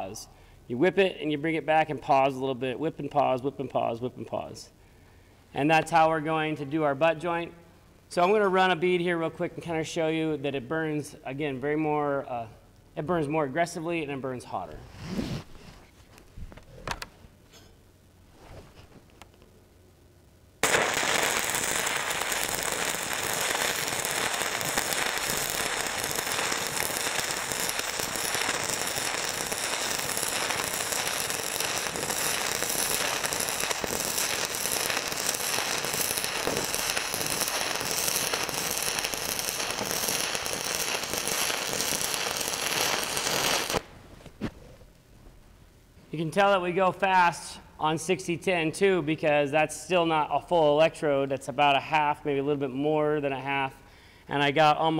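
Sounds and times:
stick welding crackle: 20.6s - 44.4s.

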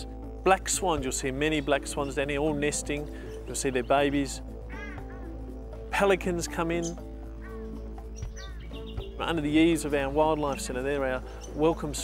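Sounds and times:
sustained background music: 0.0s - 12.0s
bird chirps: 1.5s - 5.7s, 6.6s - 12.0s.

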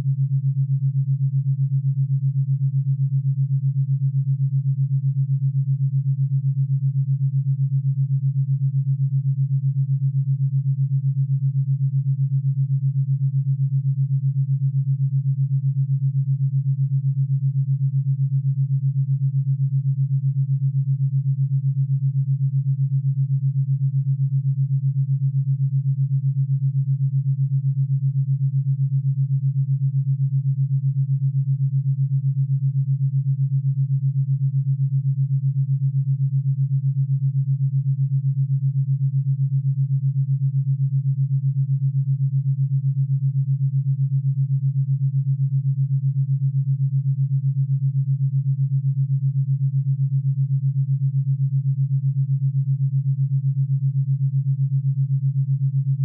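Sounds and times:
low pulsing sine tone: 0.0s - 56.0s.

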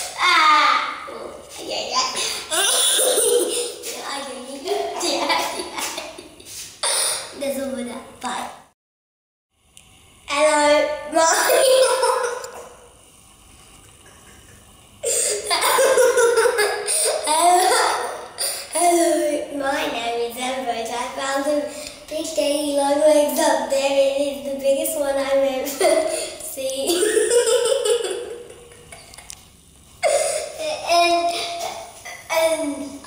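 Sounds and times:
boy laughing hysterically: 2.5s - 3.8s, 4.7s - 6.4s, 11.4s - 12.6s, 14.2s - 18.3s, 26.9s - 29.3s.

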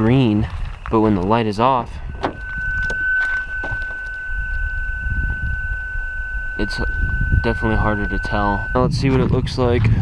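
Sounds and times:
high-pitched car warning tone: 0.0s - 9.4s
low rumble: 0.0s - 10.0s.

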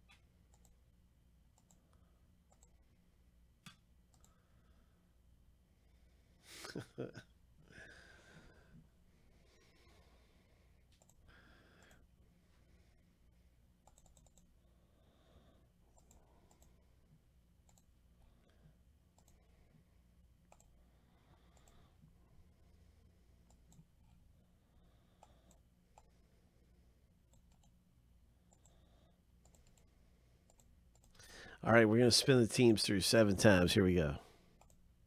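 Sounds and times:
low steady hum: 0.0s - 35.0s
mouse and keyboard clicks: 13.8s - 14.5s.

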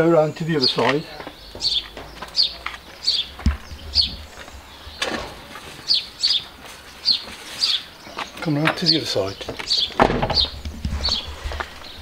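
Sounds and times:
small bird chirping: 0.2s - 12.0s
dull thump: 10.0s - 11.0s.

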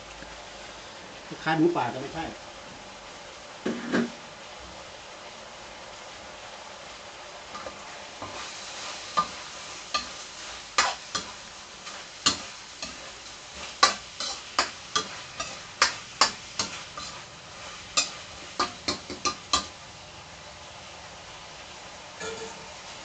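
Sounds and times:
food sizzling in a wok: 0.0s - 23.0s
metal spatula scraping a wok: 7.5s - 19.7s, 22.2s - 23.0s.

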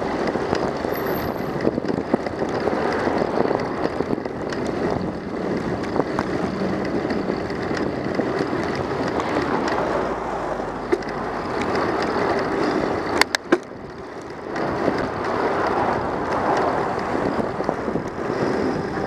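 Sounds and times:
bicycle tyres rolling on asphalt: 0.0s - 19.0s
small clicks and rattles: 0.1s - 19.0s.

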